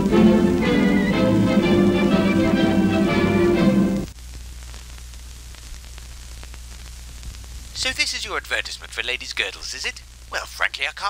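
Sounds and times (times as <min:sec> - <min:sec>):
music: 0:00.0 - 0:04.1
film soundtrack surface hiss: 0:00.0 - 0:11.0.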